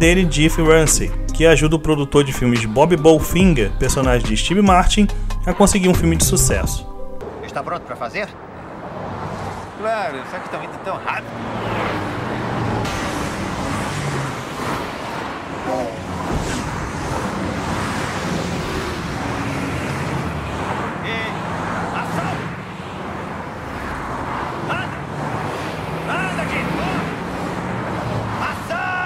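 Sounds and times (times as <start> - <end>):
cars speeding past: 6.2 - 29.0.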